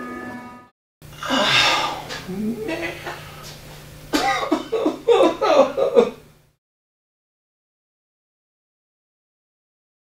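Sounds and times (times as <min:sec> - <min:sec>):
low steady hum: 0:01.0 - 0:06.5
person making loud vocal bursts: 0:01.1 - 0:02.8.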